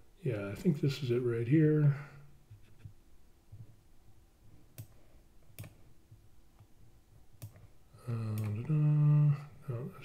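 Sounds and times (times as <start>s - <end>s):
computer mouse clicks: 4.7s - 5.8s, 7.4s - 7.7s, 8.3s - 8.8s.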